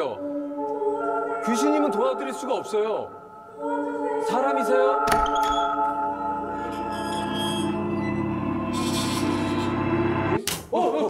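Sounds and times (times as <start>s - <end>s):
low suspense music drone: 5.0s - 10.4s.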